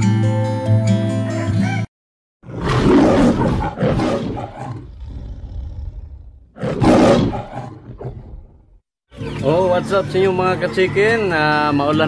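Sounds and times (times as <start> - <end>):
lion roar: 2.4 - 8.7.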